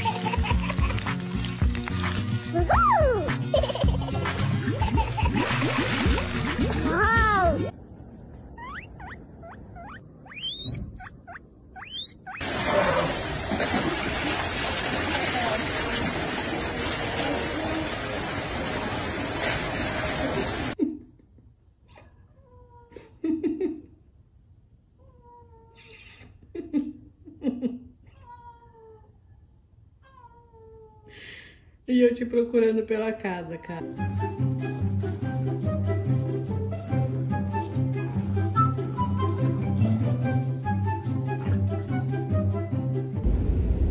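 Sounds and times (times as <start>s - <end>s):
guinea pig squeaking: 8.6s - 12.4s.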